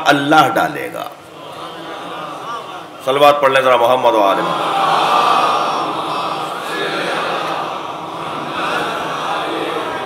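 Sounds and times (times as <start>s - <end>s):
congregation chanting in unison: 4.4s - 10.0s.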